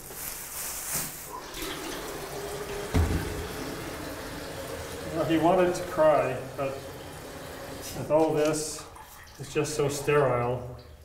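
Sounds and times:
tap water filling kettle: 0:01.3 - 0:11.0
thump: 0:02.9 - 0:03.4.

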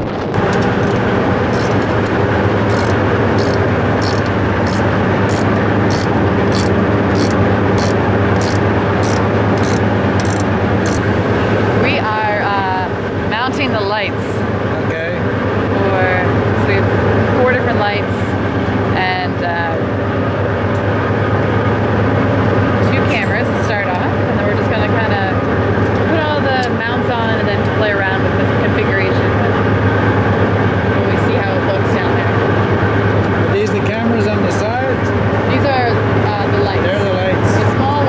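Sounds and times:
boat engine humming: 0:00.0 - 0:38.0
people talking indistinctly: 0:00.5 - 0:20.0, 0:22.0 - 0:38.0.

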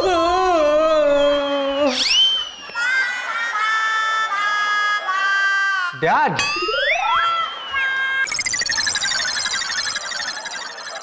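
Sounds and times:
rising and falling sweep effect: 0:08.3 - 0:11.0.

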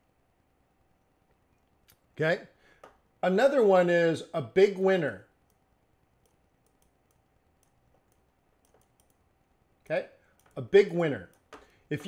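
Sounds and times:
faint steady hum: 0:00.0 - 0:12.0
input device clicks: 0:06.2 - 0:09.2.

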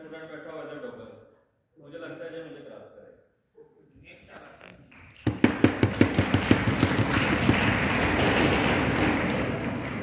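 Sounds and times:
audience applause: 0:05.5 - 0:10.0.

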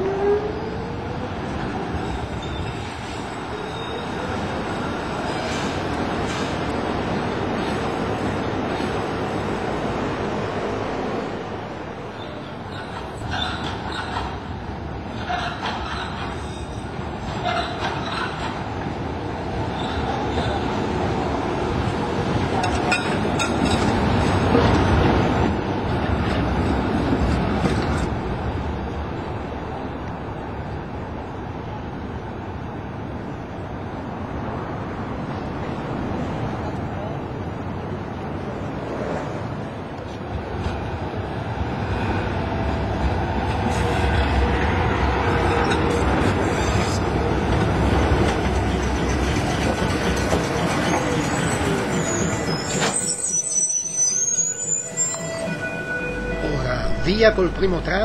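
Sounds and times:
street noise: 0:00.0 - 0:58.0
tram running on rails: 0:00.0 - 0:58.0
tram wheels knocking on track: 0:45.5 - 0:53.0.

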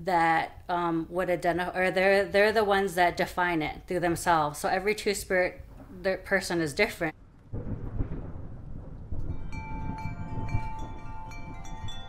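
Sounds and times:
thunder rumbling: 0:07.1 - 0:12.0
wind chimes ringing: 0:09.3 - 0:12.0.

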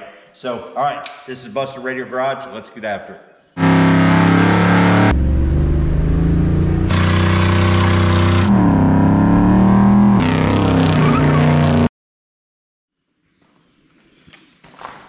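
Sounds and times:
car engines revving high: 0:03.6 - 0:11.9.

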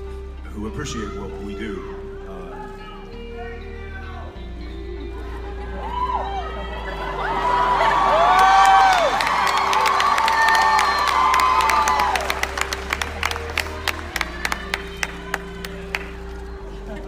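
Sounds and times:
quiet background music: 0:00.0 - 0:17.0
audience cheering and whooping: 0:05.2 - 0:17.0
scattered clapping: 0:08.1 - 0:16.5.

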